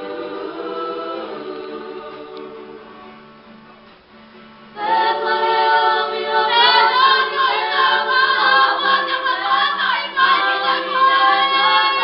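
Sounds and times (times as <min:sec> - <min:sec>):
group singing in unison: 0:00.0 - 0:03.2, 0:04.8 - 0:12.0.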